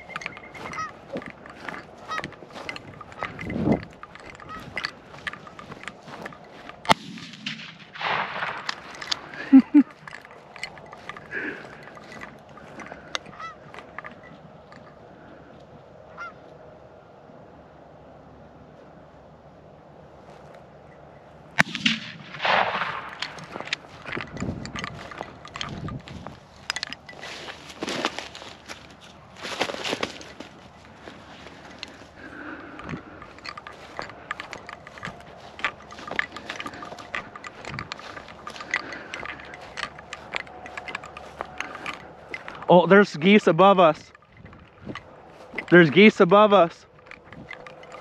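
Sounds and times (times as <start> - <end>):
footsteps through grass: 0.0 - 14.9, 21.6 - 48.0.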